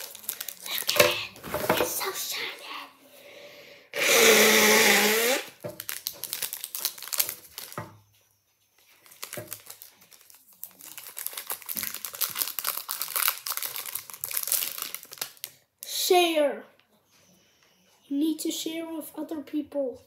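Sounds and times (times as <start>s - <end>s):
wrapper crinkling and tearing: 0.0s - 2.2s, 4.6s - 7.9s, 8.9s - 15.6s.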